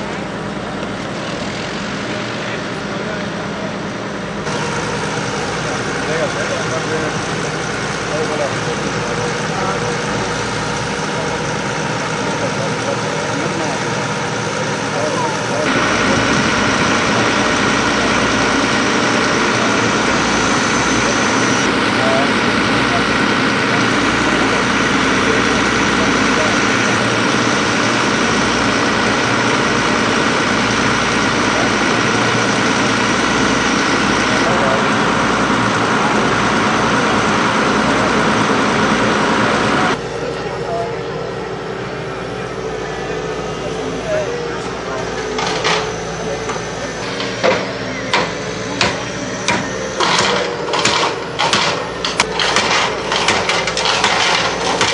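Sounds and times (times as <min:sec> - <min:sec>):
diesel excavator engine running: 0:00.0 - 0:54.9.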